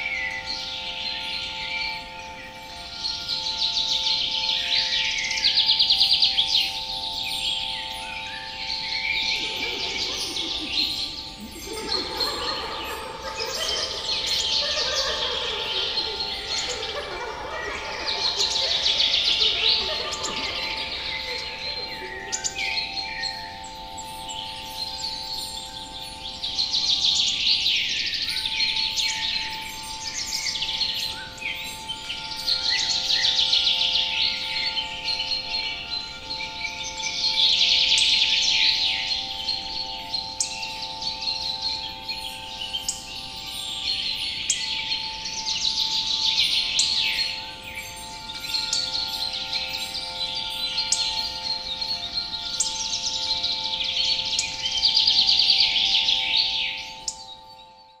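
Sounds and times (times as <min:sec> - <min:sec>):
songbirds singing and chirping: 0:00.0 - 0:58.0.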